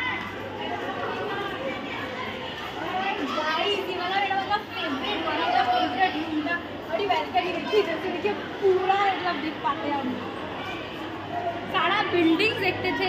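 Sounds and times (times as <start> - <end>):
girls chattering and calling out: 0.0 - 13.0.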